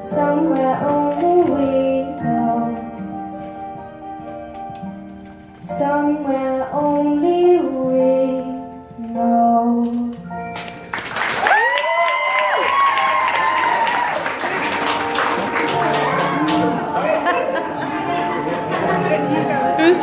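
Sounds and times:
girl singing over backing track: 0:00.0 - 0:04.2, 0:05.5 - 0:10.5
audience applause and cheering: 0:10.9 - 0:19.0.

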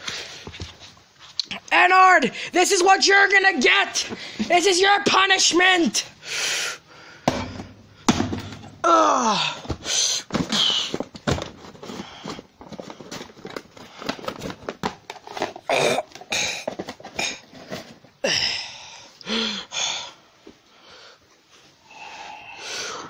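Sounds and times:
breathy huffs: 0:18.2 - 0:21.2.

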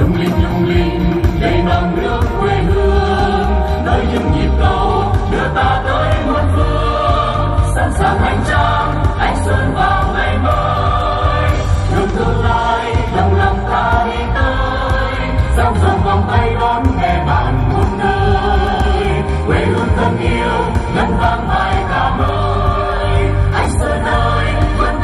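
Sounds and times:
backing music with heavy bass: 0:00.0 - 0:25.0
choir singing: 0:00.0 - 0:25.0.

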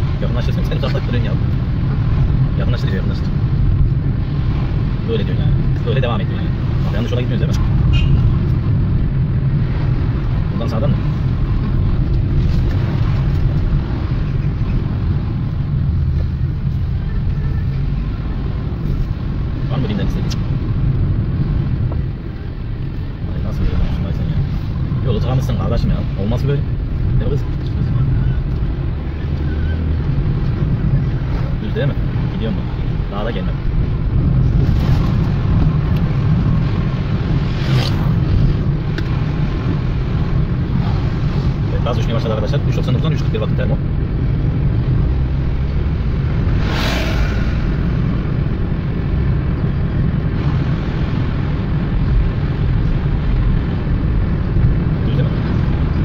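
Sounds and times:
engine and road rumble in car: 0:00.0 - 0:56.0.

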